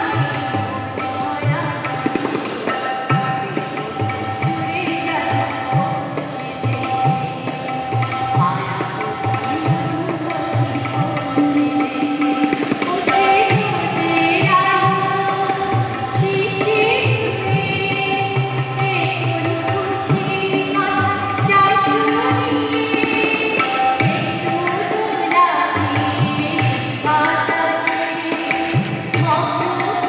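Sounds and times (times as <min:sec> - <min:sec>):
woman singing: 0:00.0 - 0:02.4, 0:04.3 - 0:30.0
tabla with sliding bass strokes: 0:00.0 - 0:30.0.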